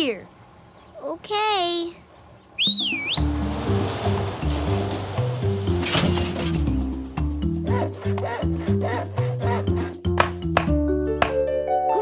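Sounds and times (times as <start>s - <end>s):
cartoon whistle glide: 2.6s - 3.4s
upbeat music with bass: 3.2s - 11.3s.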